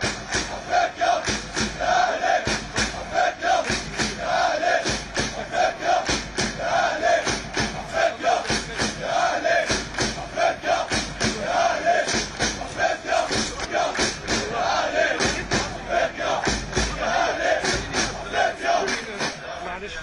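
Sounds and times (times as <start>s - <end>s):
steady beat of sharp strikes: 0.0s - 19.4s
crowd chanting in unison: 0.0s - 20.0s.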